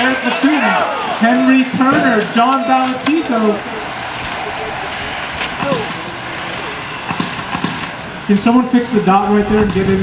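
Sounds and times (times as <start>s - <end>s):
rc car motors whining: 0.0s - 9.7s
steady background noise: 0.0s - 10.0s.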